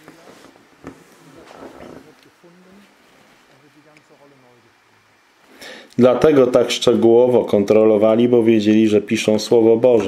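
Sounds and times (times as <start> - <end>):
man breathing: 5.4 - 6.0.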